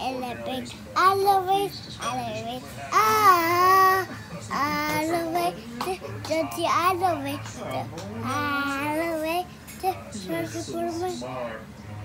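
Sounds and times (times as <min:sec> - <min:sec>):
girl singing: 0:00.0 - 0:11.2.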